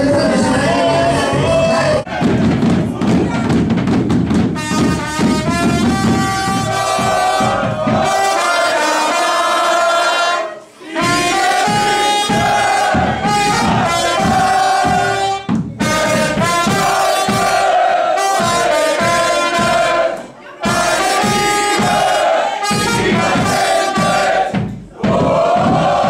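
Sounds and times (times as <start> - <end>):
bass drums: 0.0 - 8.4, 11.0 - 26.0
live band with trumpet: 4.4 - 24.5.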